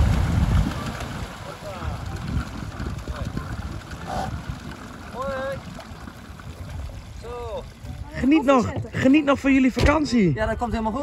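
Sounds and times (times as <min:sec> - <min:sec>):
wind on microphone: 0:00.0 - 0:09.0
water sloshing: 0:00.0 - 0:09.8.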